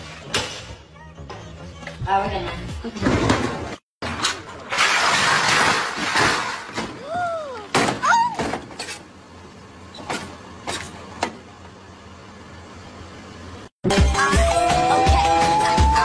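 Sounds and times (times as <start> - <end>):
truck engine rushing and grinding: 0.0 - 16.0
people crying out in alarm: 14.4 - 16.0.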